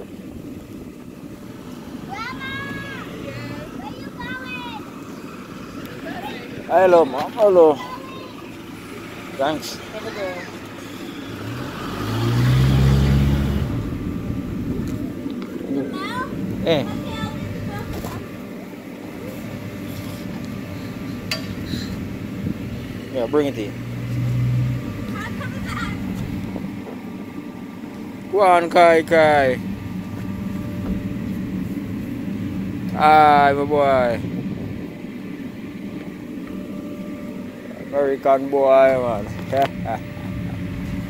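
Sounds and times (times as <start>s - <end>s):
blower fan humming: 0.0s - 41.0s.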